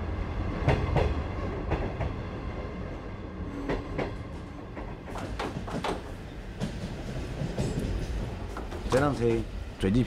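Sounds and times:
train carriage running noise: 0.0s - 10.0s.

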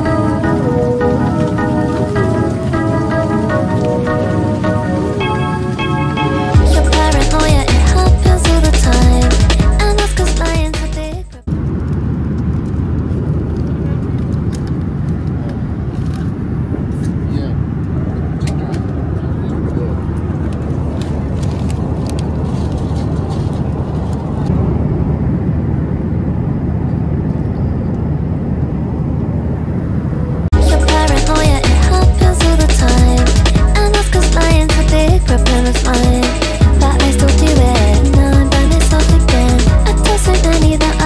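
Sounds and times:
background music: 0.0s - 11.4s, 30.6s - 41.0s
airliner cabin roar: 0.0s - 41.0s.

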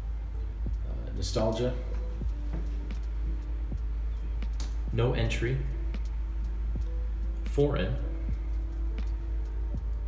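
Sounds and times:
soft background music: 0.0s - 10.0s
steady low hum: 0.0s - 10.0s.

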